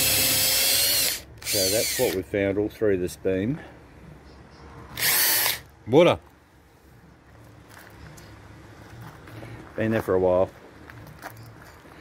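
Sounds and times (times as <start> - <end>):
electric drill boring into wood: 0.0 - 2.2, 5.0 - 5.6.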